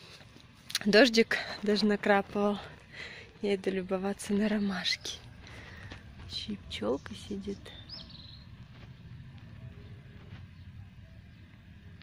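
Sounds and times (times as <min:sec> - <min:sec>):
steady low rumble: 0:00.0 - 0:12.0
faint small-bird chirps: 0:06.9 - 0:08.5.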